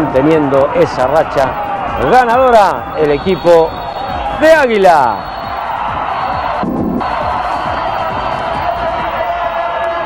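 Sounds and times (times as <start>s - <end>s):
music: 0.0s - 10.0s
stadium crowd noise: 0.0s - 10.0s.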